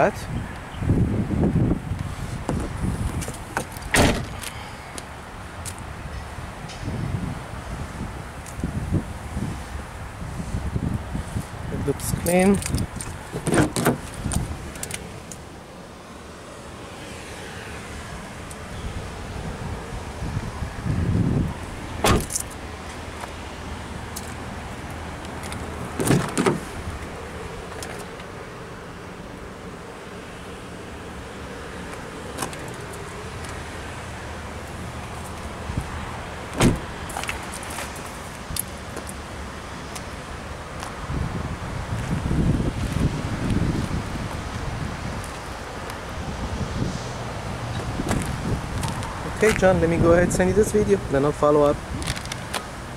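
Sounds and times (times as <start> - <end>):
car doors opening and shutting: 2.4 - 4.6, 12.7 - 15.4, 21.9 - 23.4, 25.2 - 28.3, 31.9 - 33.8, 36.5 - 38.2, 47.7 - 49.1.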